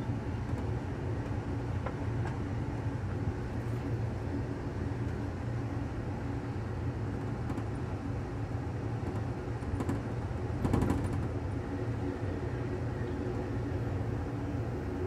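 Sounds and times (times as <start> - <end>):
train car rumbling on track: 0.0 - 15.0.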